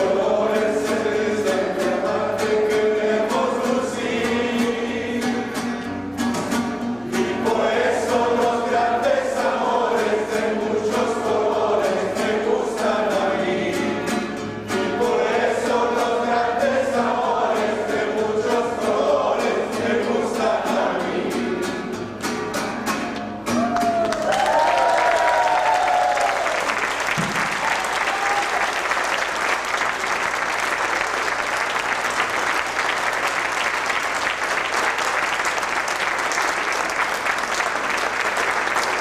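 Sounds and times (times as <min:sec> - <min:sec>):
group of voices singing: 0:00.0 - 0:05.9, 0:06.8 - 0:22.1
strummed string accompaniment: 0:00.0 - 0:24.0.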